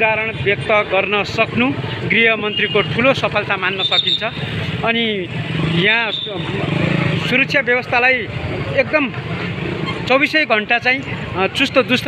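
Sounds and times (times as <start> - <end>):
people talking: 0.0 - 9.2, 10.1 - 12.0
passing vehicle engine: 0.0 - 12.0
street noise: 0.0 - 12.0.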